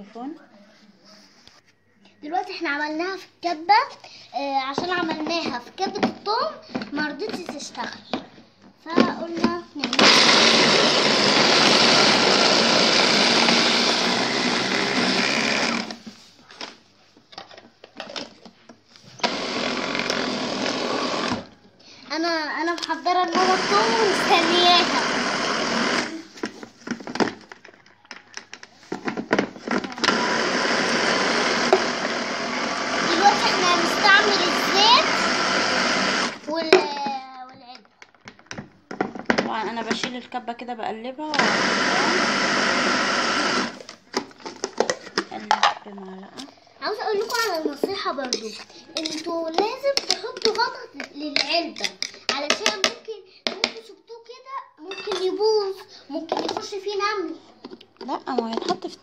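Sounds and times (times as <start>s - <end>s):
blender motor grinding: 9.9s - 16.0s, 19.2s - 21.6s, 22.8s - 26.4s, 29.1s - 36.6s, 41.3s - 45.3s.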